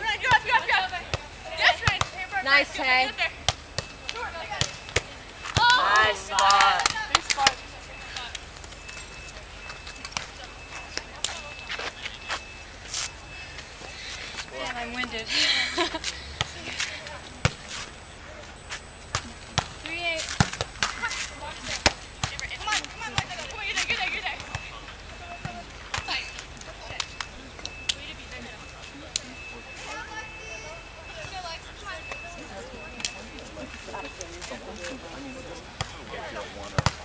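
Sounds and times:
faint voices: 0.0s - 37.0s.

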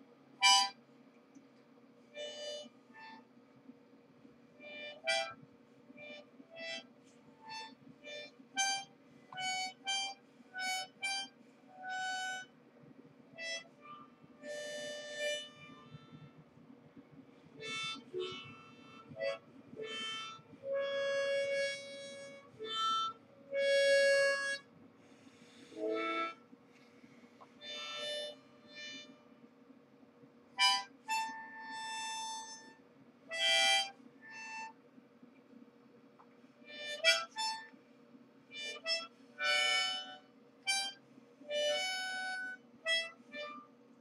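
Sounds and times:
solo harmonica: 0.4s - 0.8s, 2.1s - 3.3s, 4.6s - 5.4s, 6.0s - 12.5s, 13.4s - 16.4s, 17.4s - 26.4s, 27.6s - 29.3s, 30.6s - 34.8s, 36.6s - 37.8s, 38.5s - 43.7s.

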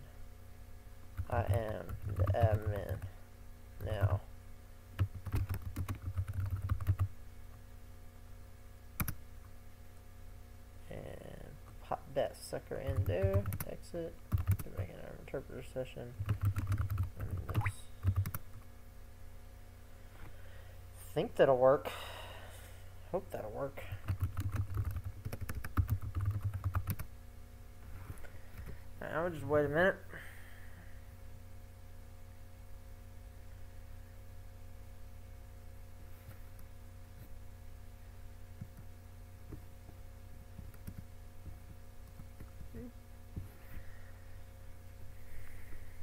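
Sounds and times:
typing on computer keyboard: 1.2s - 3.1s, 5.0s - 7.1s, 14.3s - 14.6s, 16.2s - 18.4s, 24.0s - 27.1s.

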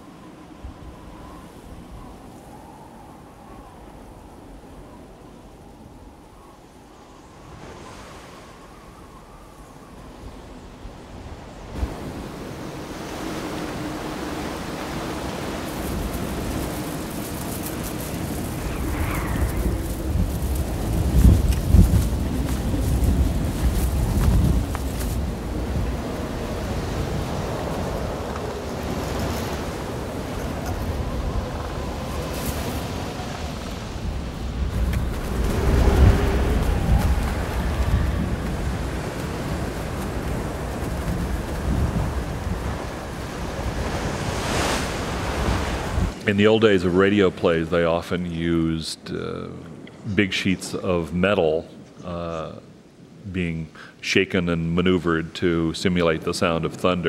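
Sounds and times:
surf washing on a beach: 0.0s - 48.7s
strong wind gusting through trees: 0.0s - 57.0s.

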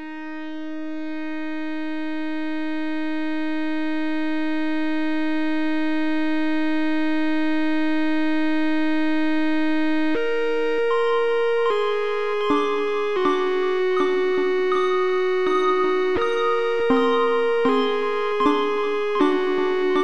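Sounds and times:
held synthesizer note: 11.7s - 20.0s.

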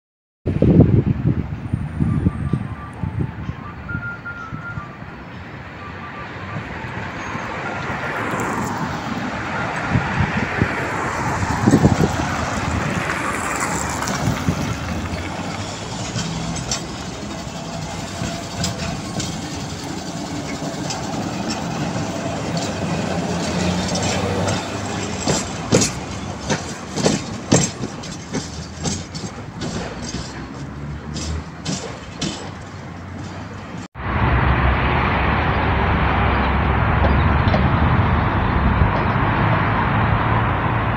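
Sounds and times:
tram rumbling on rails: 0.5s - 40.9s
high-pitched wheel squeal: 1.8s - 12.0s, 14.9s - 26.4s
wheels clicking over track joints: 10.6s - 33.9s.

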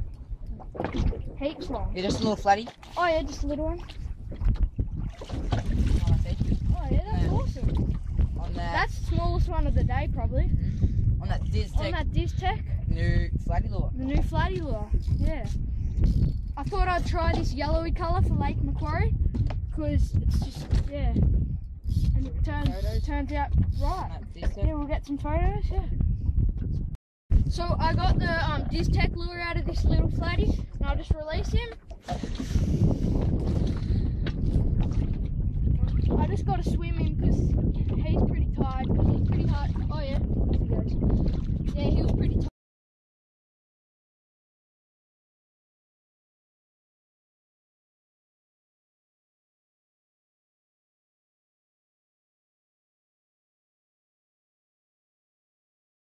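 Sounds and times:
wind rumbling on microphone: 0.0s - 42.5s.

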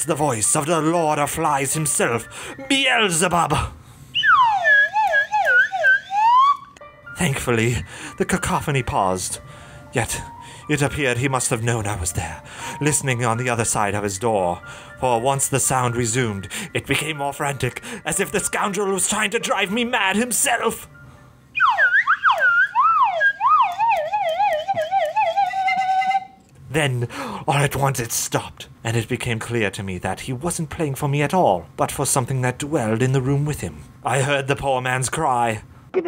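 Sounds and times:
slide whistle swoops: 4.1s - 6.8s, 21.5s - 26.4s.

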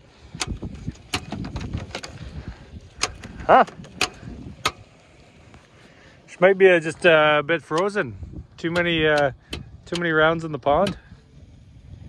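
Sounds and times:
car starter clicks: 0.3s - 2.2s, 2.9s - 4.9s, 7.6s - 11.2s.

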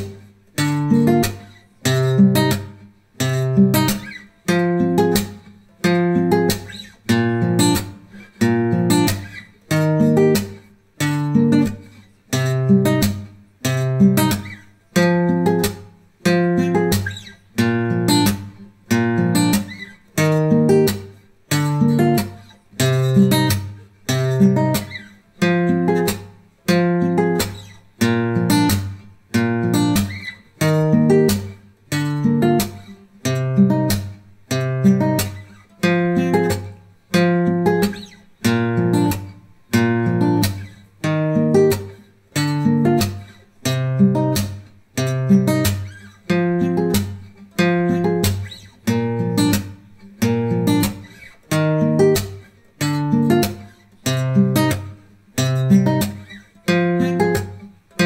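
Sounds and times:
acoustic guitar strumming chords: 0.0s - 58.0s.

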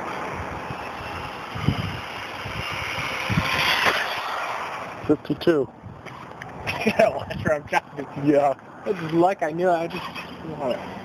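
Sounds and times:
electric motor whining: 0.1s - 5.1s
wind rumble on microphone: 0.2s - 4.2s, 4.9s - 8.0s.

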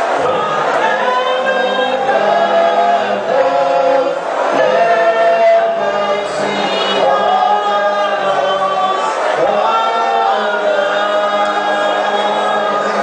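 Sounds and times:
congregation singing: 0.0s - 13.0s.

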